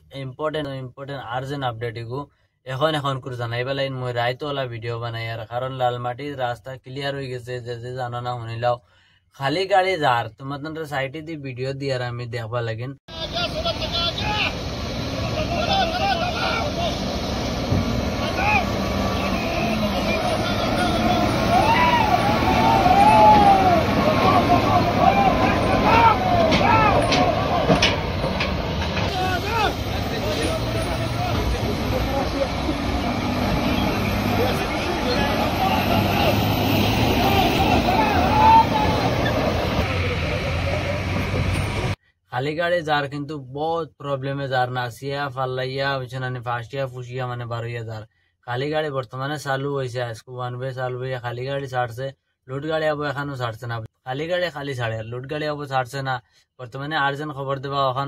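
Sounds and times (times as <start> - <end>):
people's voices: 13.1 - 17.2, 17.8 - 41.9
heavy truck engines running: 13.1 - 42.0
people calling out: 15.2 - 17.1, 18.2 - 27.8, 29.1 - 41.0.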